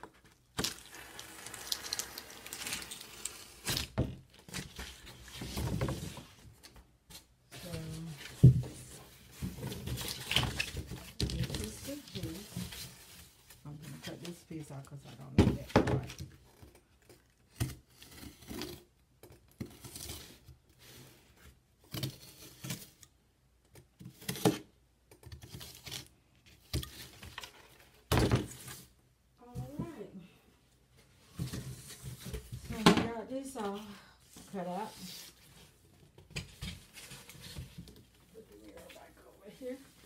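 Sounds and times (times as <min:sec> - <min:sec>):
cardboard knocking down: 0:28.1 - 0:28.6.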